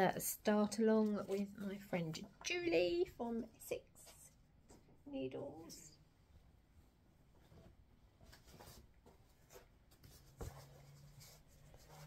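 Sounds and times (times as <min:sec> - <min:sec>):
faint rustling of fabric: 0:05.9 - 0:12.0.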